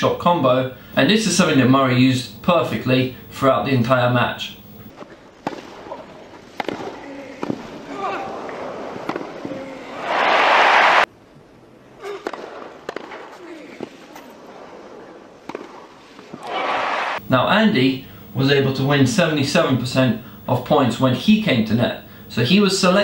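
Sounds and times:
racket striking tennis ball: 5.0s - 9.6s, 12.0s - 16.8s
crowd applause: 9.8s - 11.1s, 16.4s - 17.2s.

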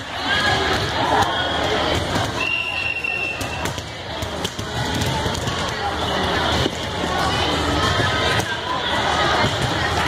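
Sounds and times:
spectators' voices din: 0.0s - 10.0s
volleyball impacts echoing: 0.3s - 10.0s.

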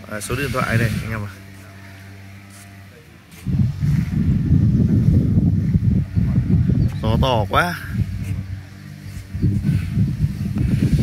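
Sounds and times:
wind buffeting microphone: 0.0s - 1.5s, 3.4s - 11.0s.

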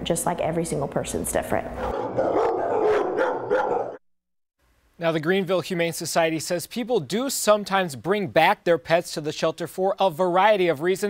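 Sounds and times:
dogs barking: 1.8s - 4.0s.

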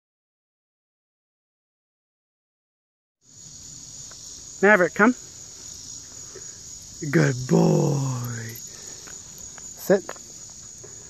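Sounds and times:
insects chirring: 3.2s - 11.0s.

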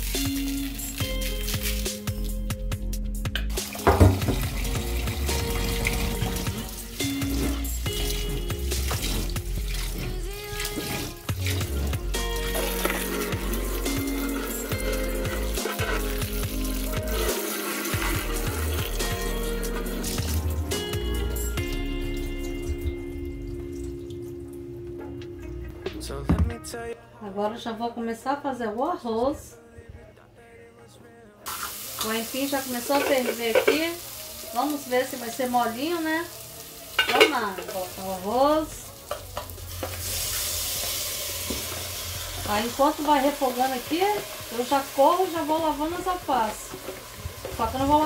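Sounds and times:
background music: 0.0s - 48.0s
tap water splashing into bowl: 3.4s - 6.6s.

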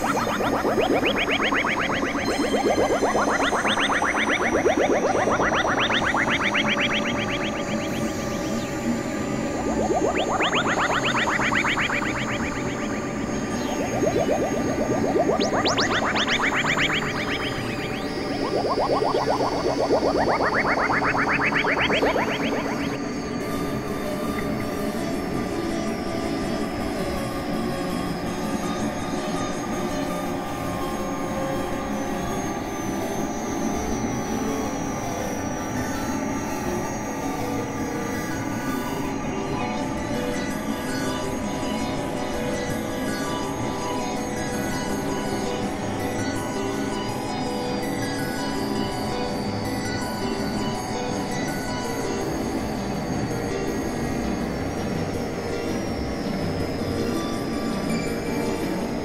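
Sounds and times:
high whistling tones: 0.0s - 23.0s
upward-sweeping synth blips: 0.0s - 23.4s
low synth drone: 0.0s - 23.6s.

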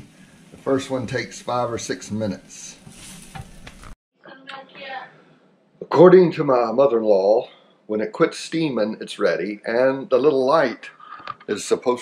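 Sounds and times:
waffle batter sizzling: 0.0s - 4.0s.

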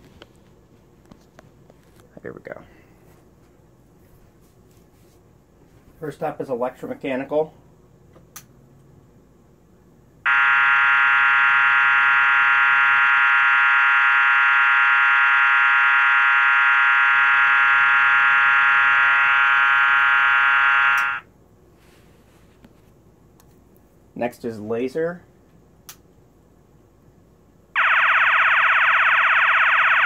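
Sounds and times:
buzzy fire alarm horn: 10.2s - 21.3s, 27.8s - 30.0s.

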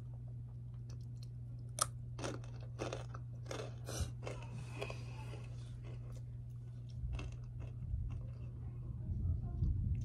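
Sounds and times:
steady low hum: 0.0s - 10.0s
chips crunching: 0.8s - 8.6s.

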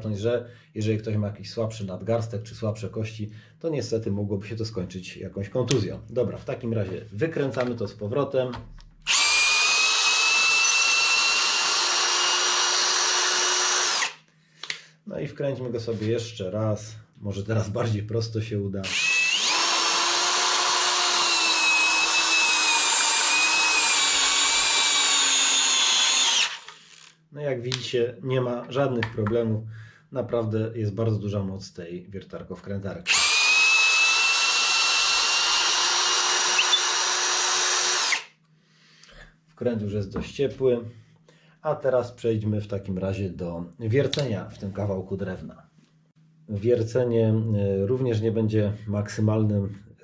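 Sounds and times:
cordless drill motor whine: 9.1s - 14.2s, 18.8s - 27.2s, 33.1s - 38.3s
screw turning in wood: 9.1s - 14.2s, 18.9s - 27.2s, 33.1s - 38.3s.

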